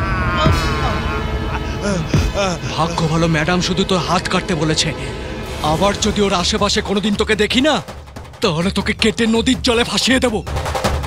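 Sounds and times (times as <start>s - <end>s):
film score music: 0.0s - 11.0s
dramatic drum roll: 5.4s - 11.0s.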